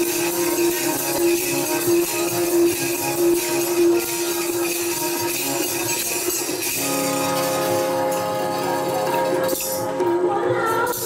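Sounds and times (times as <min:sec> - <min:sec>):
tabla: 0:00.0 - 0:11.0.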